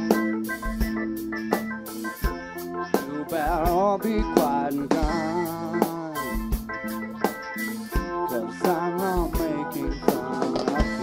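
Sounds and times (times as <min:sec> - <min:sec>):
drum kit hits: 0:00.0 - 0:11.0
live rock band playing: 0:00.0 - 0:11.0.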